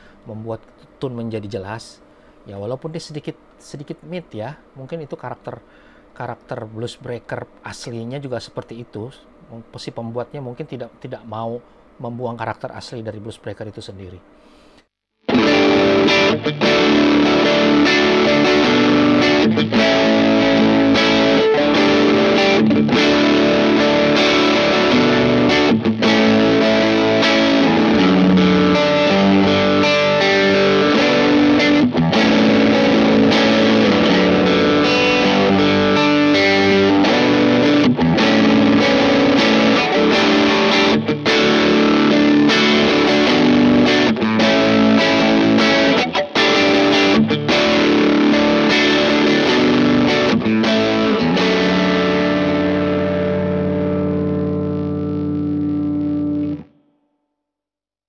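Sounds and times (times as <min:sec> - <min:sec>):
overdriven electric guitar: 0:15.2 - 0:56.9.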